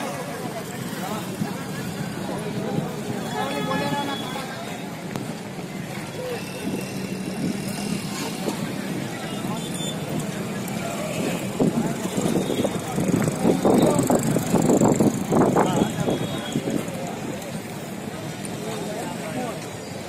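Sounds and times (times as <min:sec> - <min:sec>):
crowd talking: 0:00.0 - 0:20.0.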